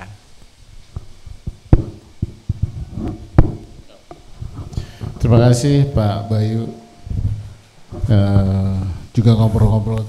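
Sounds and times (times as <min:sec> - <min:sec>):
microphone handling knocks: 0:00.9 - 0:08.8.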